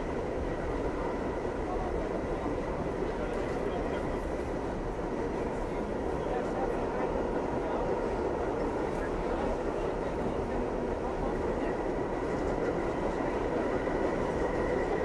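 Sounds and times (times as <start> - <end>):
rumble of train wheels on rail: 0.0 - 15.0.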